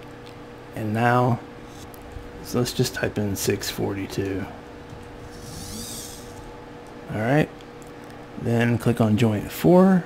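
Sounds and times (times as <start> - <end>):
faint steady hum: 0.0 - 10.0
servo motor whirring: 5.2 - 6.5.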